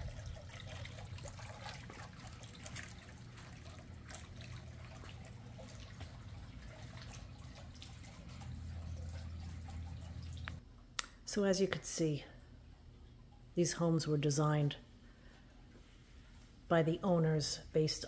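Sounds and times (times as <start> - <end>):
water feature trickling: 0.0 - 10.6
low steady hum: 0.0 - 18.0.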